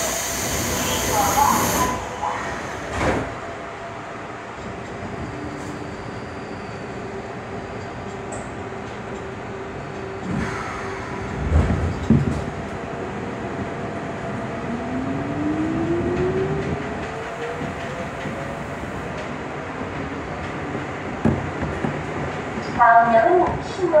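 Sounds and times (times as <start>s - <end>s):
train wheels rumbling on track: 0.0s - 24.0s.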